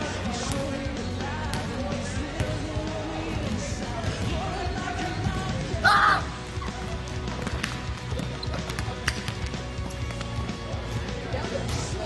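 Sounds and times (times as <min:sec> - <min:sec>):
background music: 0:00.0 - 0:12.0
basketball bouncing: 0:07.4 - 0:10.5.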